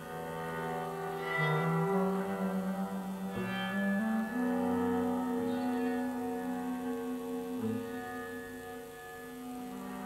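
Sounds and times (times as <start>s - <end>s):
bowed electric guitar: 0.0s - 10.0s
droning instrumental music: 0.0s - 10.0s.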